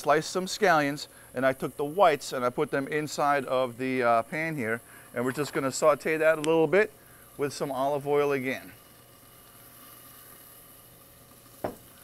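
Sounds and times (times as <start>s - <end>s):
food sizzling in pans: 0.0s - 12.0s.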